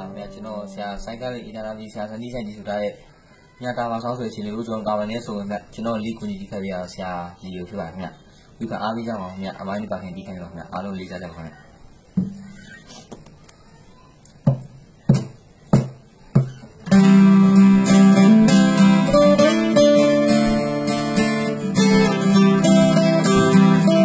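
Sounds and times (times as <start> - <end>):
acoustic guitar strumming: 0.0 - 1.2, 14.5 - 24.0.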